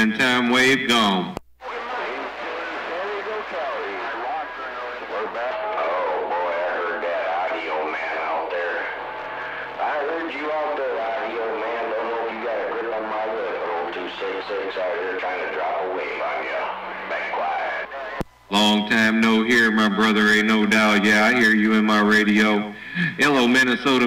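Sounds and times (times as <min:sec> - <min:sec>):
faint garbled radio voices: 0:00.0 - 0:24.0
radio static hiss: 0:00.0 - 0:24.0.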